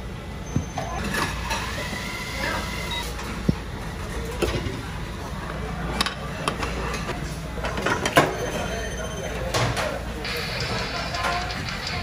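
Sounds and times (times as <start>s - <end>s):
diners chattering: 1.6s - 12.0s.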